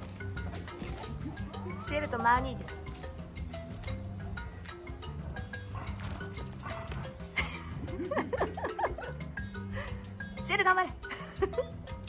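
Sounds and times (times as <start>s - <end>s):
background music: 0.0s - 12.0s
dog barking: 5.2s - 7.2s.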